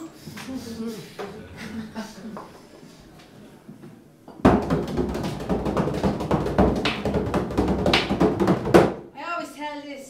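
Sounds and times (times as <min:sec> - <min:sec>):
frame drum roll: 0:04.4 - 0:09.1.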